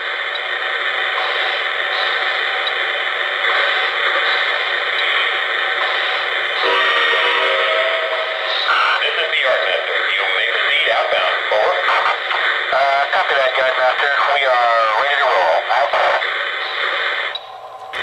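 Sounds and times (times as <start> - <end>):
train whistle tone: 6.6 - 8.4.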